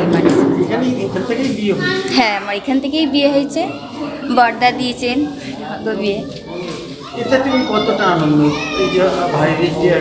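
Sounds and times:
children chattering and calling out: 0.0 - 10.0
people talking: 0.0 - 10.0.

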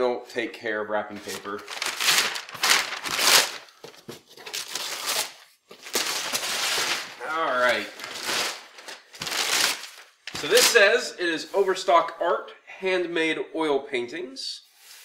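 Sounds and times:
wrapping paper ripping and rustling: 1.2 - 10.9.

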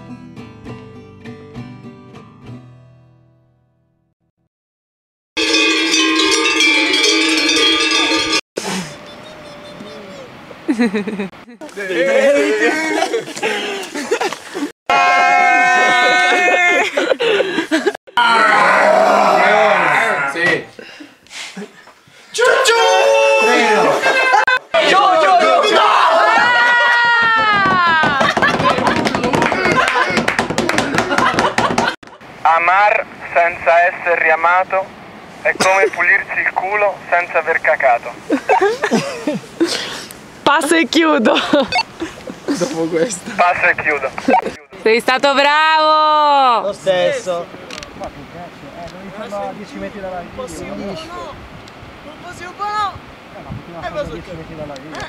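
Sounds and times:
metal livestock bells clanging: 5.4 - 8.4
laughter: 10.7 - 11.7, 12.6 - 14.7, 15.3 - 18.0, 28.0 - 32.0, 38.3 - 39.7, 41.2 - 42.8
quick hand clapping: 27.0 - 32.0.

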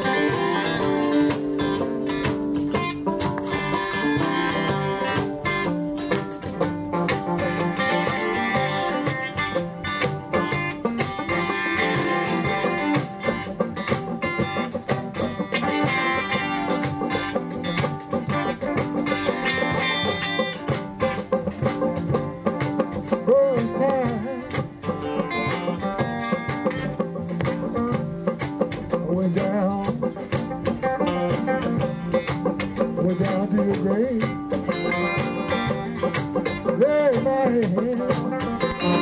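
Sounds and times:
banjo: 0.0 - 39.0
bass guitar: 0.0 - 39.0
electric guitar: 0.0 - 39.0
fiddle: 0.0 - 39.0.

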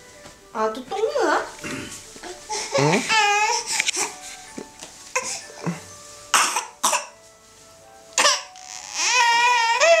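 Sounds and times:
toddler crying: 2.2 - 4.2, 5.2 - 5.7, 8.2 - 10.0.

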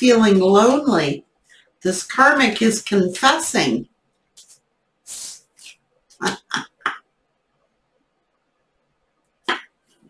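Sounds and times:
woman laughing: 6.2 - 7.0.

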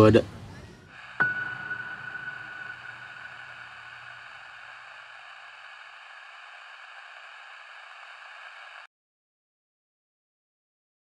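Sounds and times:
static-like hiss: 0.9 - 8.9
low rumble: 1.0 - 7.0.

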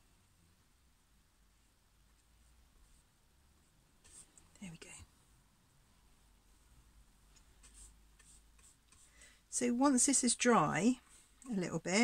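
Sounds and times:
paintbrush scratching: 4.0 - 4.4, 7.6 - 9.2.

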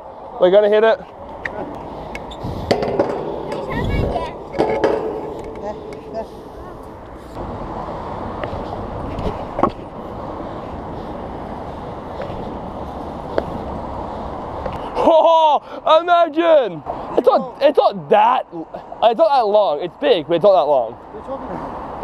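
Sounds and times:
scooter wheels rolling on concrete: 0.4 - 15.1
sharp knock: 2.6 - 6.1.

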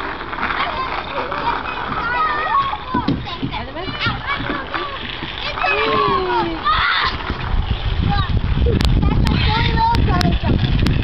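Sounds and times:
children chattering and calling out: 0.0 - 11.0
steady background noise: 0.0 - 11.0.

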